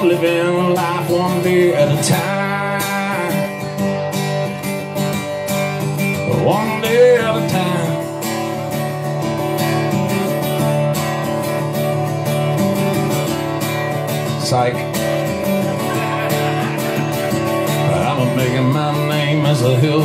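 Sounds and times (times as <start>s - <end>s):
guitar strummed rhythmically: 0.0s - 20.0s.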